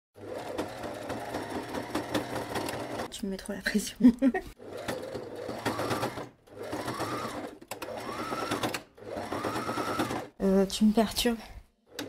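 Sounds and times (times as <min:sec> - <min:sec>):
sewing machine running: 0:00.2 - 0:03.1, 0:04.5 - 0:10.4.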